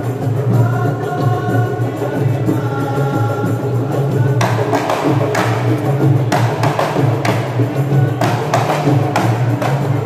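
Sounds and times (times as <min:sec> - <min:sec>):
hand drums beating: 0:00.0 - 0:10.0.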